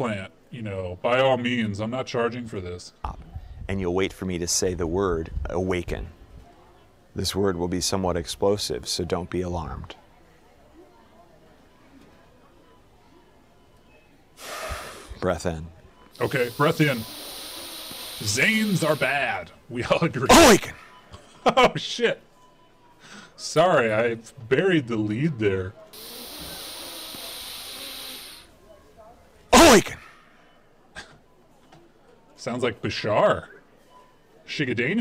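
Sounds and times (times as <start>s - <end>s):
sharp breath in: 14.4s - 15.2s, 16.2s - 19.2s, 26.0s - 28.5s
steady hiss: 16.2s - 19.4s, 26.0s - 28.5s.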